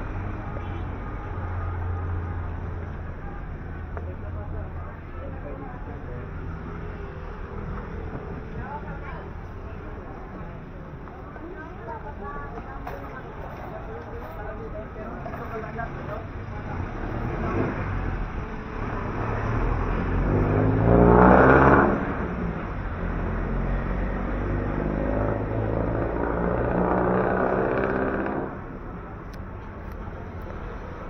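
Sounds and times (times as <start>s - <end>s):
vehicles passing: 0.0s - 31.0s.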